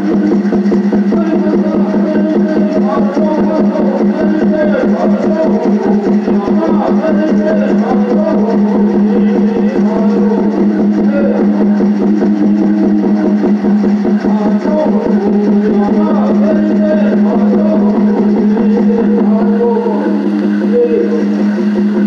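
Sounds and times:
person singing: 0:00.0 - 0:22.0
water drum beat: 0:00.0 - 0:22.0.

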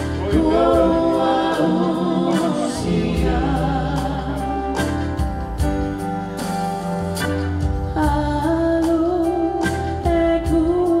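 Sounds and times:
choir singing: 0:00.0 - 0:05.1
bass line: 0:00.0 - 0:11.0
steady drum beat: 0:00.0 - 0:11.0.

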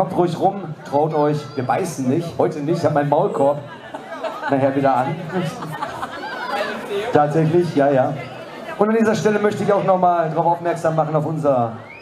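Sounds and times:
overlapping chatter over speakers: 0:00.0 - 0:12.0.

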